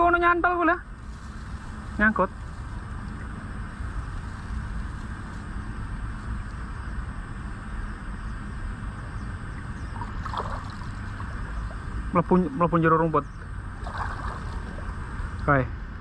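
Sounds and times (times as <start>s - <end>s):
river water rushing and sloshing: 9.9s - 12.2s, 13.8s - 15.3s.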